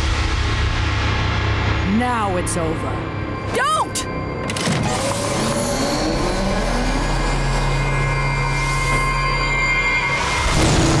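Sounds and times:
energy cannon charging whine: 4.2 - 11.0.

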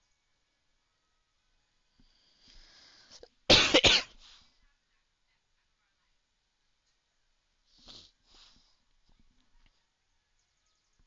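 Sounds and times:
person coughing: 3.5 - 4.1.

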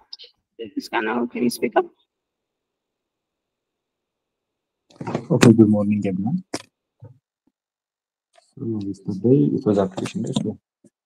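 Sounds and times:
person speaking: 4.9 - 6.8, 8.5 - 10.6.

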